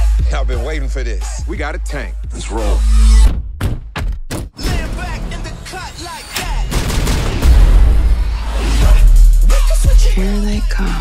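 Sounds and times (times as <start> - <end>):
action trailer music: 0.0 - 11.0
rapid gunfire: 6.7 - 7.8.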